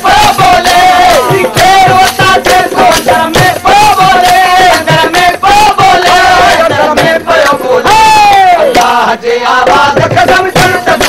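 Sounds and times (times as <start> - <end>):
men chanting together: 0.0 - 11.0.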